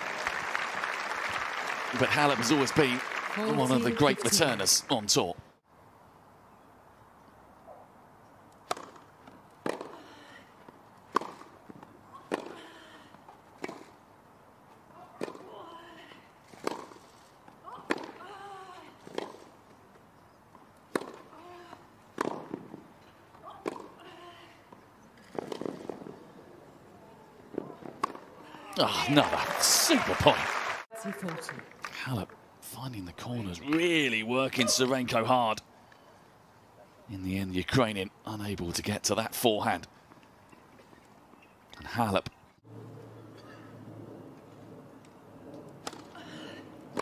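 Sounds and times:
crowd applause: 0:00.0 - 0:04.6, 0:28.8 - 0:32.0
tennis racket hitting ball: 0:09.6 - 0:10.0, 0:11.1 - 0:11.6, 0:12.3 - 0:12.6, 0:16.6 - 0:17.0, 0:20.9 - 0:21.3, 0:22.2 - 0:22.8.

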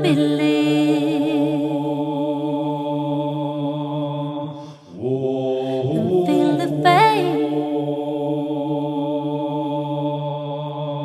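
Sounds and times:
chant-like electronic tone: 0:05.0 - 0:09.4.

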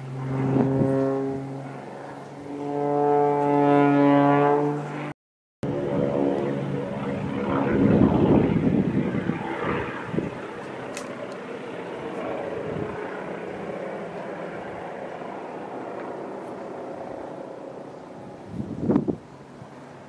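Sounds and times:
aircraft flying overhead: 0:00.0 - 0:20.0.

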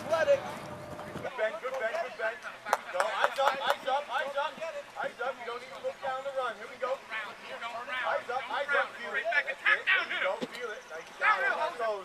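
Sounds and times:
voices calling out: 0:00.0 - 0:12.0.

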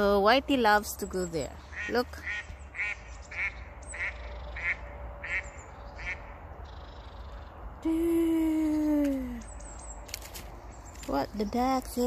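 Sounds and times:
duck quacking: 0:01.7 - 0:06.3.

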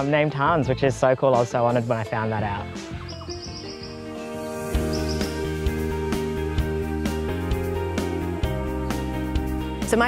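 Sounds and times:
background music sustained notes: 0:00.0 - 0:10.0
bird chirping: 0:02.9 - 0:05.8.

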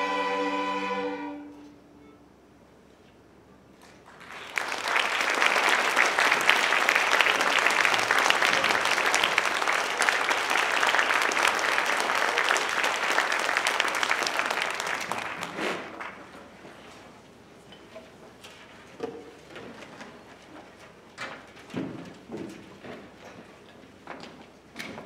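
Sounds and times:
audience applauding: 0:04.0 - 0:16.4.

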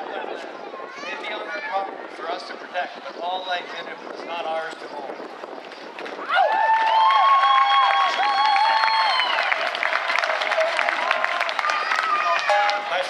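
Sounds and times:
crowd cheering and clapping: 0:06.0 - 0:13.0
long whoops: 0:06.2 - 0:09.6.

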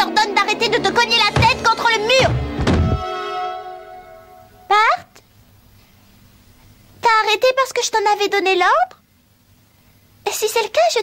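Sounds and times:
held musical note: 0:00.6 - 0:04.7
heavy thuds behind a door: 0:01.3 - 0:03.1.

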